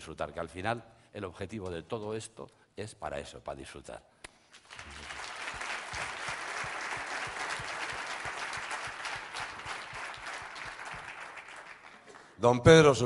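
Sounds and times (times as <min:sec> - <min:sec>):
audience applauding: 0:04.6 - 0:12.4.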